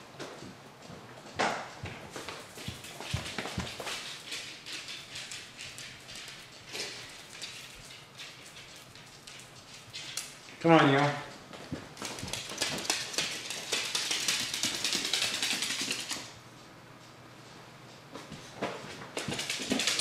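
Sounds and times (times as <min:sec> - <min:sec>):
person's footsteps: 0:00.0 - 0:20.0
animal claws clicking on tile: 0:02.2 - 0:10.6, 0:12.0 - 0:16.4, 0:19.2 - 0:20.0.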